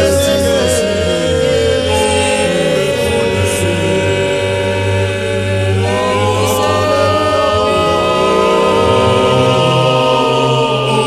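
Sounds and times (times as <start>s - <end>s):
choir singing in harmony: 0.0s - 11.0s.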